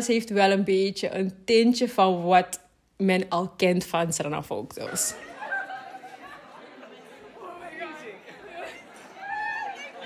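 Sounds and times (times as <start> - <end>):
indistinct chatter of voices: 5.1 - 10.0.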